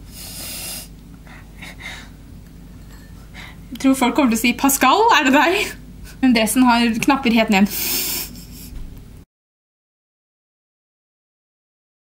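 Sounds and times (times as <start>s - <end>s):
woman snorting: 7.7s - 8.8s.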